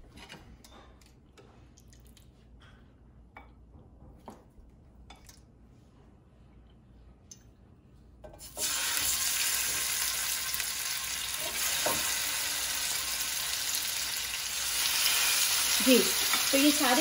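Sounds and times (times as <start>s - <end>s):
chicken sizzling in hot oil: 8.4s - 17.0s.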